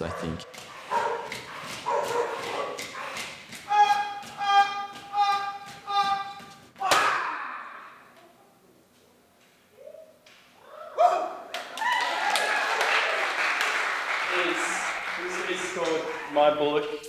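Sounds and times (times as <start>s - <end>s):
audience whooping: 10.7s - 16.4s
audience applause: 11.6s - 16.6s.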